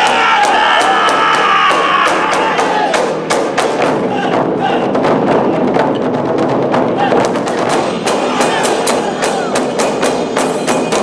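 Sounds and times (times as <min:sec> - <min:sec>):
drummers shouting: 0:00.0 - 0:05.8, 0:06.7 - 0:11.0
taiko drum strikes: 0:00.0 - 0:11.0.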